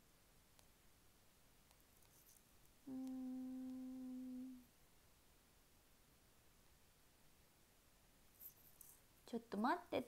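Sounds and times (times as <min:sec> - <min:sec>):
woman humming a steady note: 0:02.8 - 0:04.7.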